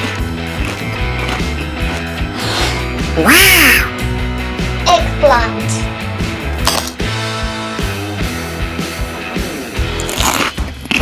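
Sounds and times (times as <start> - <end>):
upbeat background music: 0.0 - 11.0
cartoon sound effect: 3.2 - 4.0.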